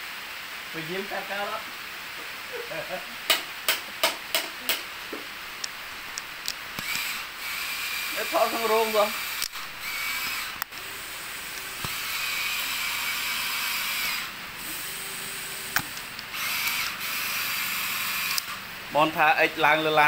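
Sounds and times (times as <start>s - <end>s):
steady hiss: 0.0s - 20.0s
sharp clicks: 5.6s - 7.2s, 9.3s - 10.9s, 18.2s - 18.6s
toy motor whining: 6.8s - 18.6s.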